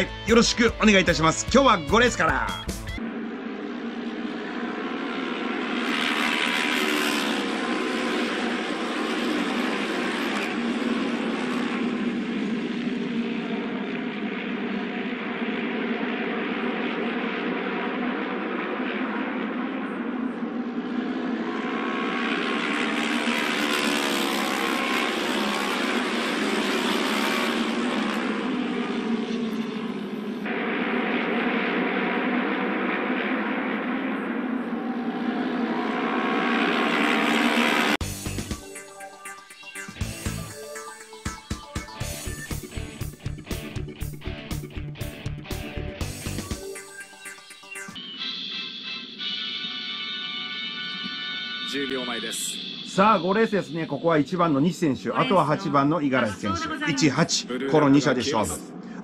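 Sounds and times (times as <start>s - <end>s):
racing motorcycle engines: 0.0s - 48.1s, 51.0s - 59.0s.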